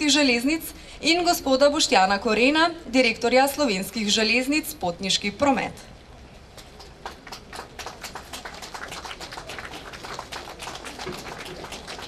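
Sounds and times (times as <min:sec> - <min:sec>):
crowd applauding: 0:06.6 - 0:12.0.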